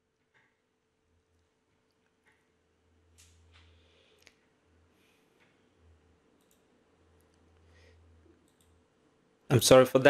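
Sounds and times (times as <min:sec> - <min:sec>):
faint low hum: 0:00.0 - 0:10.0
computer mouse clicks: 0:06.3 - 0:07.4, 0:08.4 - 0:08.8.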